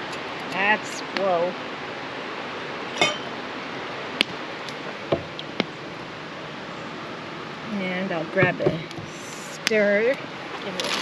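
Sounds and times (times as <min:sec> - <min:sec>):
glass clinking on steel tumbler: 0:03.0 - 0:03.3.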